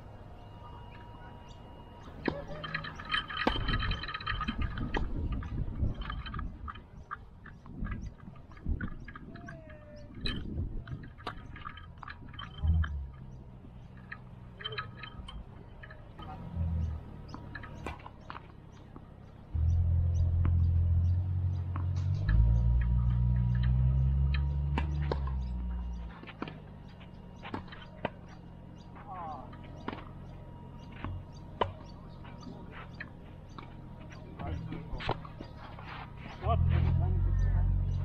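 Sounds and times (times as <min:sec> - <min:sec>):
tennis ball bouncing: 0:16.9 - 0:36.0
low rumble: 0:19.5 - 0:27.9
racket hitting tennis ball: 0:24.7 - 0:25.4.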